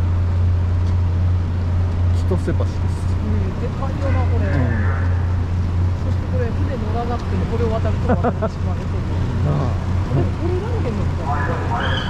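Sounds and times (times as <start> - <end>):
ferry engine drone: 0.0 - 12.0
people talking indistinctly: 2.2 - 5.2, 6.0 - 12.0.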